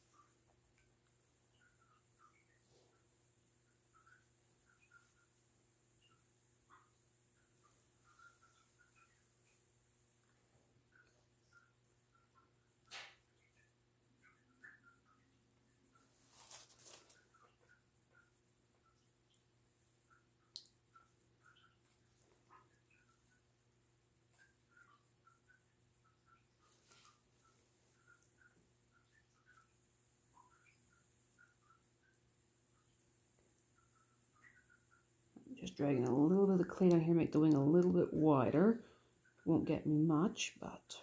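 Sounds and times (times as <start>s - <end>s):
brief rustle: 16.2s - 17.2s.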